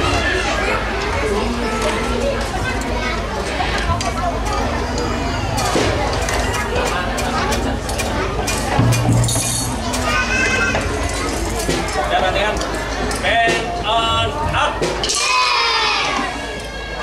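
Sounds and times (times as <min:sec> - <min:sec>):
children chattering: 0:00.0 - 0:17.0
instruments clicking and clinking: 0:01.0 - 0:13.8.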